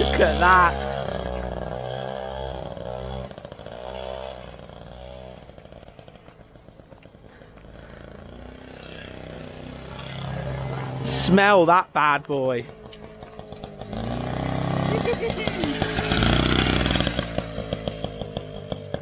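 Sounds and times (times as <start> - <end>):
moped engine revving: 0.0 - 19.0.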